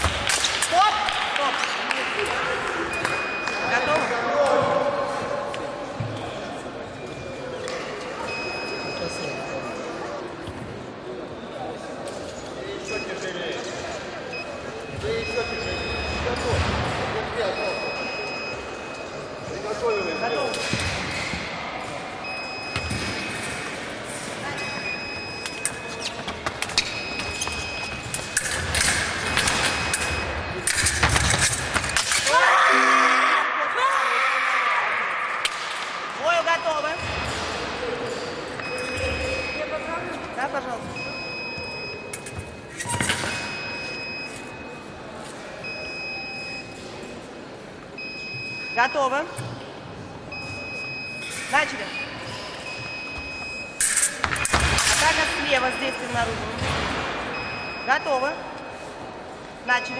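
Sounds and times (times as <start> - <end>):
voices around the hall: 0.0 - 59.9
fencing footwork: 22.8 - 32.4
short high beep: 32.6 - 33.7.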